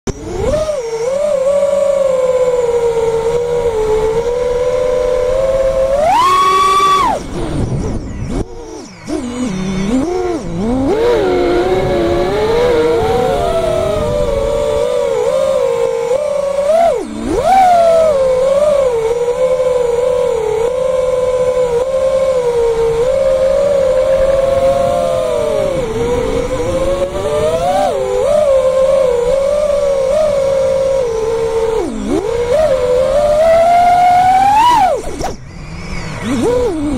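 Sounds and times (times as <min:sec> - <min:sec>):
drone motors whining: 0:00.1 - 0:36.9.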